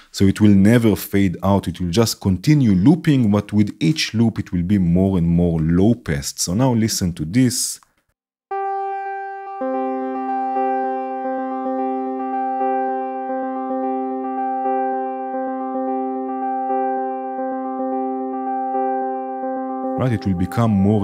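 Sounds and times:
synthesizer notes with delay echoes: 0:08.5 - 0:21.0.

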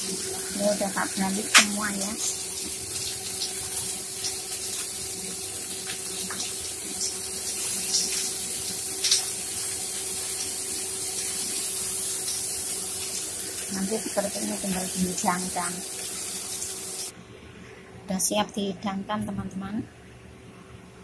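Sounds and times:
chilies frying in hot oil: 0:00.0 - 0:17.1
oil popping and crackling: 0:01.4 - 0:13.8.

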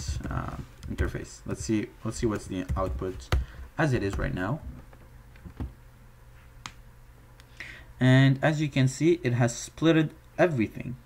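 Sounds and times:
faint low hum: 0:00.0 - 0:11.0
short breath: 0:07.5 - 0:08.0.

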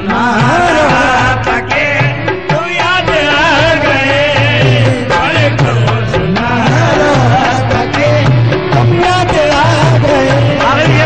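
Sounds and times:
hand drum: 0:00.0 - 0:11.0
harmonium: 0:00.0 - 0:11.0
man singing ornamented line: 0:00.0 - 0:11.0.

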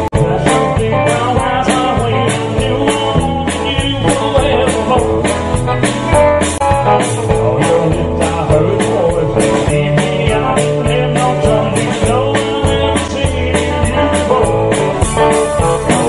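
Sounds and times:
drums: 0:00.0 - 0:16.0
electric guitar: 0:00.0 - 0:16.0.

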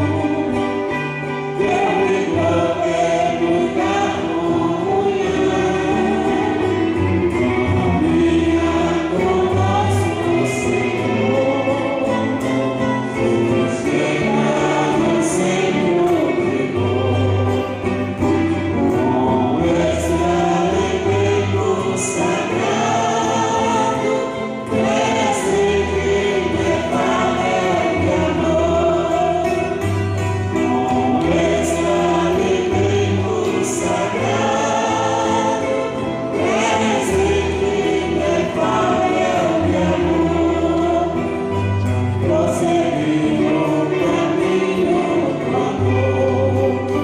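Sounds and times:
choir singing a hymn: 0:00.0 - 0:47.0.

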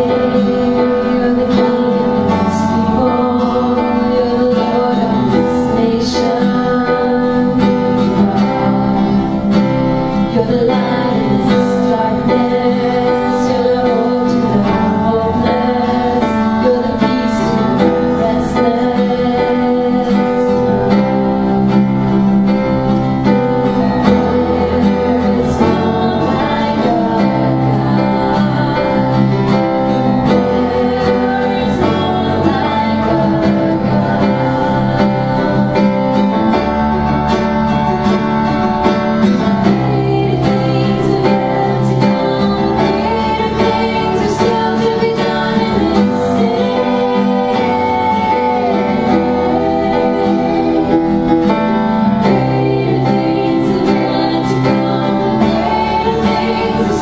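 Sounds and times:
bass line: 0:00.0 - 0:57.0
electric keyboard chords: 0:00.0 - 0:57.0
strummed acoustic guitar: 0:00.0 - 0:57.0
women singing: 0:00.0 - 0:57.0.

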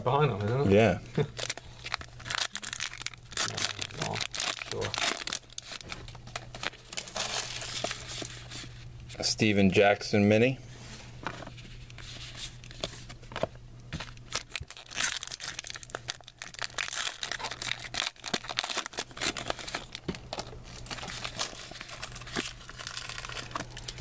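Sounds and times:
cards and wrappers rustling: 0:01.4 - 0:08.8, 0:11.2 - 0:24.0.

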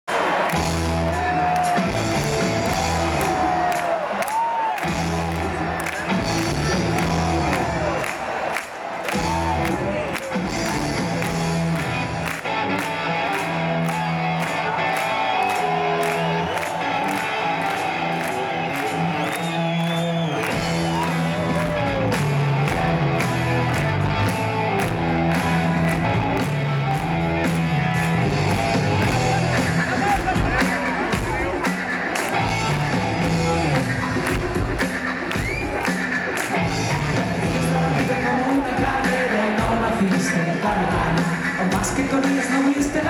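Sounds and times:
crowd noise: 0:00.0 - 0:43.0
live rock band: 0:00.4 - 0:43.0.

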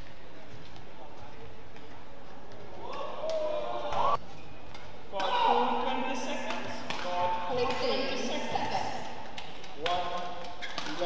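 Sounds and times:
voices in arena: 0:00.0 - 0:11.0
racket striking shuttlecock: 0:06.4 - 0:11.0
shoe squeaks on court: 0:09.7 - 0:11.0.

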